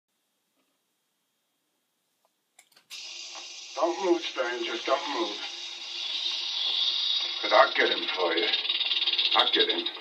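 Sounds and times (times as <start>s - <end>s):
steady hiss: 2.9s - 10.0s
man talking: 3.8s - 5.5s, 7.4s - 8.6s, 9.4s - 10.0s.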